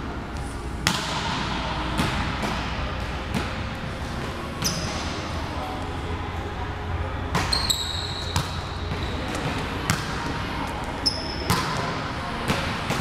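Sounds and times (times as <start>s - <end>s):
volleyballs struck and bouncing: 0.8s - 3.8s, 7.3s - 13.0s
high squeaks: 7.5s - 8.4s.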